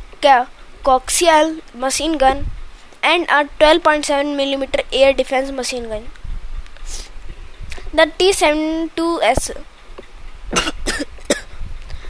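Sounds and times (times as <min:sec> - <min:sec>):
person coughing: 0:10.5 - 0:11.6.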